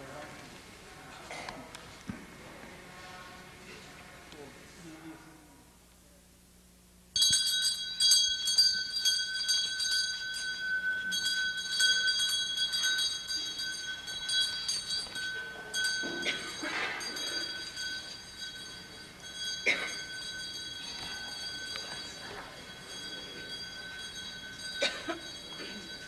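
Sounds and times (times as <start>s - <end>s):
small bells jingling: 7.1s - 26.0s.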